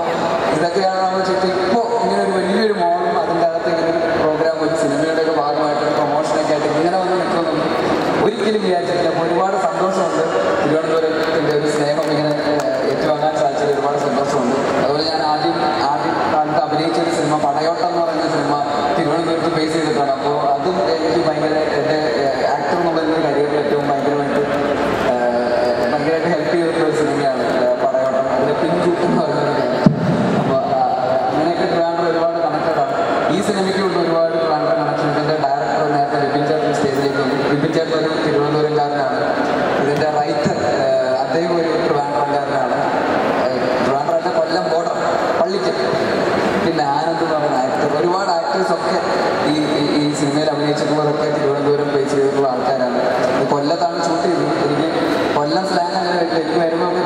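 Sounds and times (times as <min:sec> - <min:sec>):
man speaking over pa system: 0:00.0 - 0:57.0
man talking into microphone: 0:00.0 - 0:57.0.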